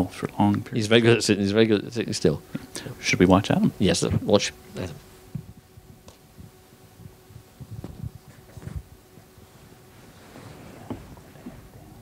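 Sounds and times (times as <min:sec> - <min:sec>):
soft rustling: 0:07.6 - 0:12.0.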